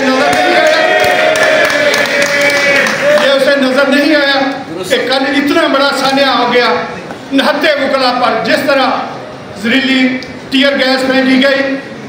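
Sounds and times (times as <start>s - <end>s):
scattered clapping: 0.2s - 3.5s.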